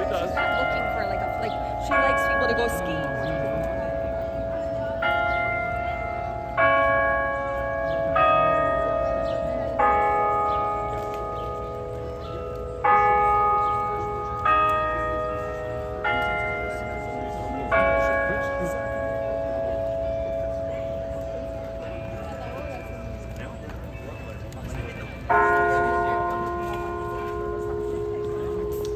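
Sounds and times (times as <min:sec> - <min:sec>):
clock bells chiming a tune: 0:00.0 - 0:28.9.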